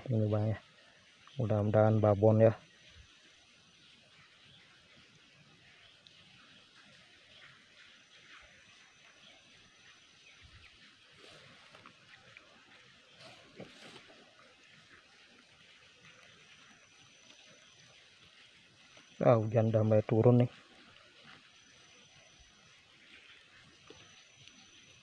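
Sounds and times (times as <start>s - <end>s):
soft clicks and rustles: 11.5s - 12.5s.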